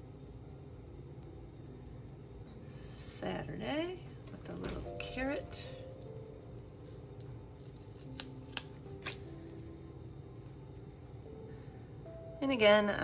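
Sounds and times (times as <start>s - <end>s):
soft background music: 0.0s - 13.0s.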